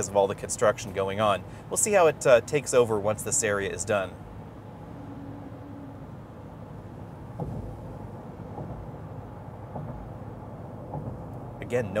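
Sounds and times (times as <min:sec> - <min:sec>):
road and tyre noise inside a car: 0:00.0 - 0:12.0
faint thumps: 0:07.2 - 0:11.5.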